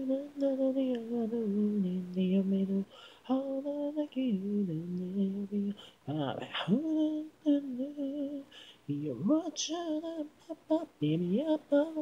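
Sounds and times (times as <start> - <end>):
person singing unaccompanied: 0.0 - 12.0.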